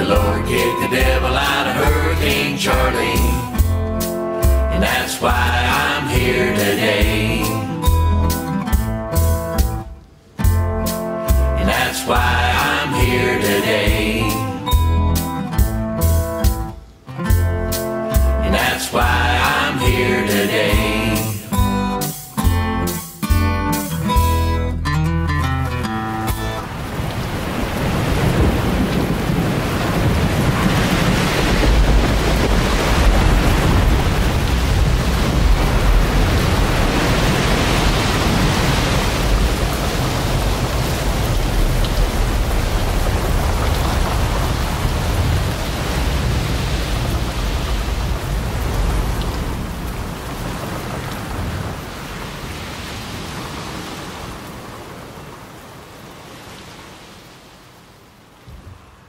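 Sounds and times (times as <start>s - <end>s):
heavy rain: 0.0s - 10.6s, 11.3s - 17.1s, 18.1s - 22.5s, 25.8s - 59.0s
thunder rumbles: 26.6s - 52.4s.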